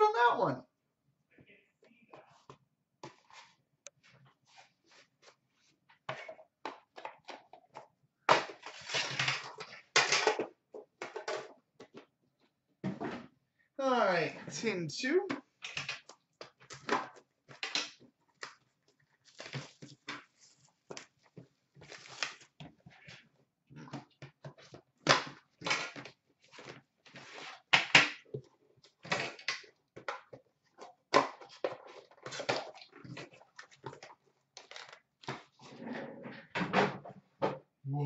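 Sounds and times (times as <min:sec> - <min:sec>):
plastic wrap crinkling and tearing: 0:21.8 - 0:22.6.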